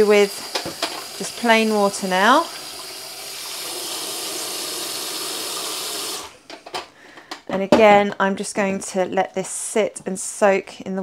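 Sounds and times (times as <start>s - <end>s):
tap water running into sink: 0.0s - 6.3s.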